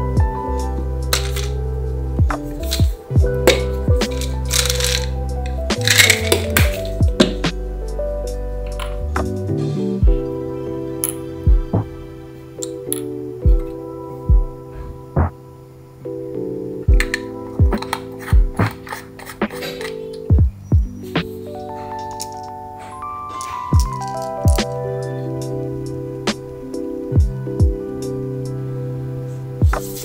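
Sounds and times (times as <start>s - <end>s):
music with steady beat: 0.0s - 15.5s, 16.9s - 28.7s, 29.5s - 30.0s
pills rattling in bottle: 1.1s - 1.6s, 2.6s - 2.9s, 3.5s - 7.0s, 17.0s - 20.2s, 22.0s - 22.5s, 23.3s - 24.8s
plastic cap snapping: 1.2s - 1.6s, 3.5s - 5.1s, 5.8s - 7.4s, 17.0s - 20.0s.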